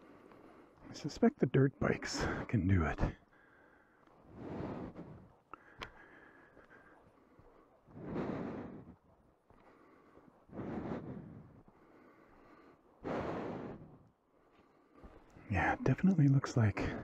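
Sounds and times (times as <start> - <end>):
heavy breathing: 2.0 - 15.8.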